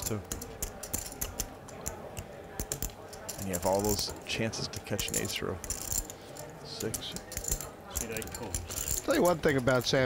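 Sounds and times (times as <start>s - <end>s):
poker chips clicking: 0.0s - 4.1s.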